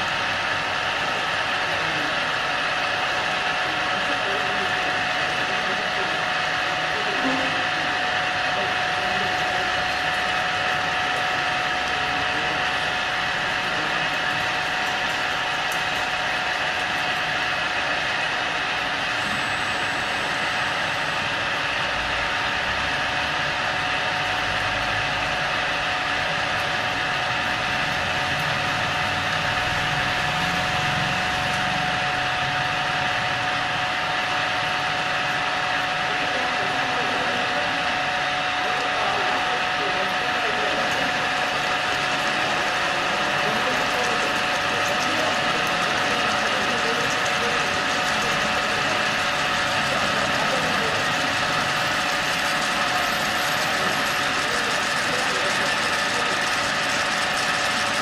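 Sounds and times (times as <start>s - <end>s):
drilling machine running: 0.0s - 58.0s
steady machine whine: 0.0s - 58.0s.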